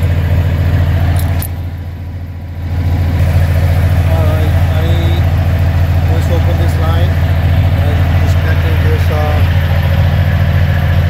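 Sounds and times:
diesel truck engine idling: 0.0 - 11.0
wrench clicks: 1.1 - 1.6.

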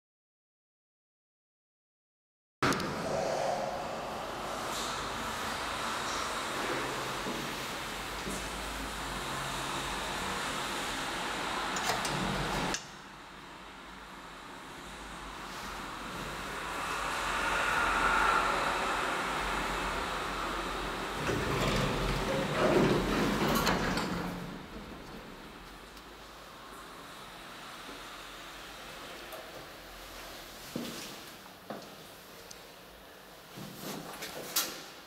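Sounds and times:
elevator running in shaft: 2.6 - 29.7
elevator door sliding open: 11.1 - 12.8, 19.2 - 25.9.

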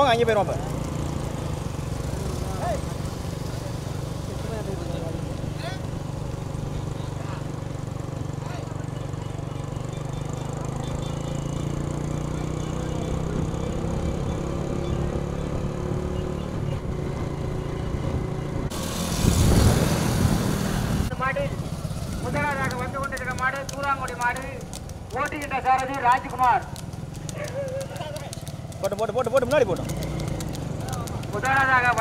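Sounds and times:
motorcycles running at low speed: 0.0 - 32.0
men shouting: 27.3 - 28.4.

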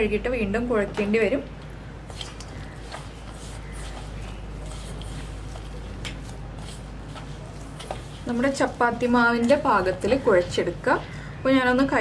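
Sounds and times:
low steady hum: 0.0 - 12.0
hands kneading dough in bowl: 2.1 - 10.8.

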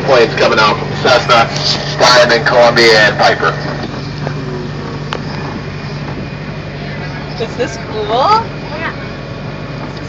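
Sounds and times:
low engine hum: 0.0 - 10.0
rolling rumble: 0.0 - 10.0.

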